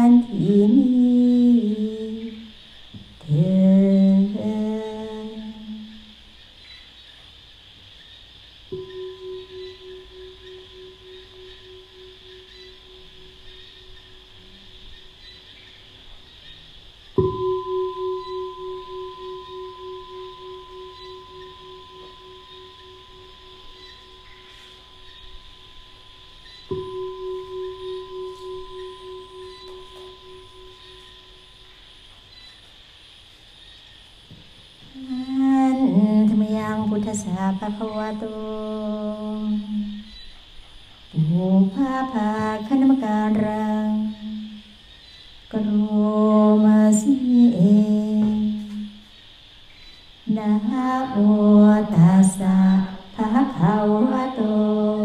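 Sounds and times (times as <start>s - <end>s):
woman chanting: 0.0s - 6.3s, 8.7s - 15.5s, 17.4s - 31.6s, 34.9s - 40.2s, 41.1s - 44.8s, 45.5s - 49.0s, 50.2s - 55.0s
singing bowl ringing: 8.7s - 16.2s, 17.2s - 32.7s, 35.0s - 40.4s, 41.3s - 49.0s, 50.3s - 55.0s.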